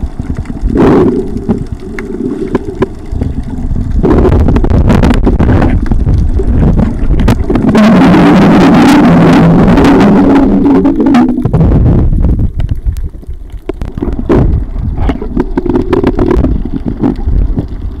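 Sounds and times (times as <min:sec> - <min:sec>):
loud low underwater rumble: 0:00.0 - 0:18.0
underwater clicks: 0:00.0 - 0:18.0
underwater water movement: 0:00.0 - 0:18.0.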